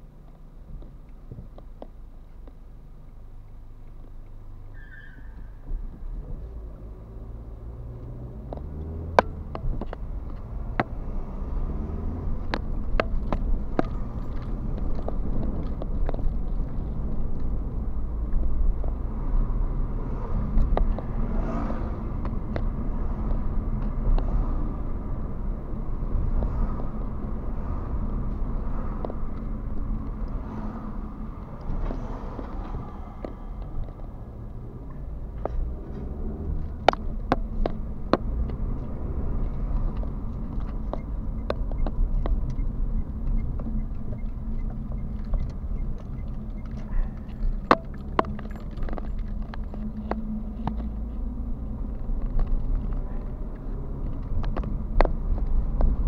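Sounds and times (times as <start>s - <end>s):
road noise inside car: 0.0s - 56.0s
car engine accelerating: 5.4s - 56.0s
sharp clicks and knocks: 8.4s - 11.2s, 11.9s - 19.0s, 31.3s - 56.0s.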